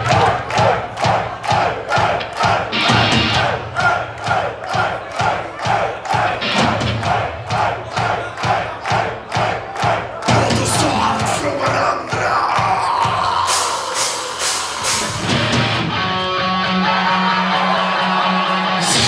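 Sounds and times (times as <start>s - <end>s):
crowd shouting along: 0.0s - 19.0s
live metal band playing: 2.4s - 3.7s, 6.2s - 7.4s, 10.3s - 19.0s.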